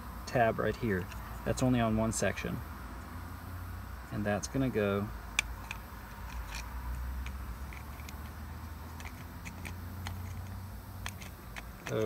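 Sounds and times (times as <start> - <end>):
low steady rumble: 0.0 - 12.0
seat belt retractor clicks: 5.4 - 12.0.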